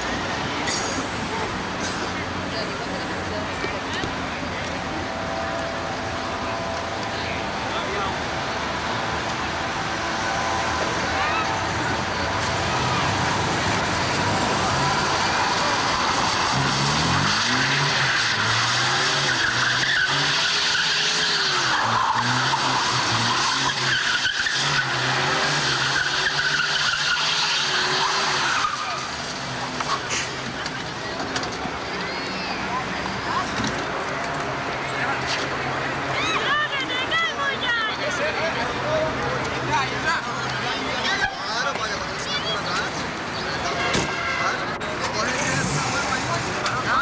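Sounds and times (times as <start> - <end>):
car engine revving: 0.0 - 36.1, 38.3 - 47.0
tyres skidding: 0.0 - 47.0.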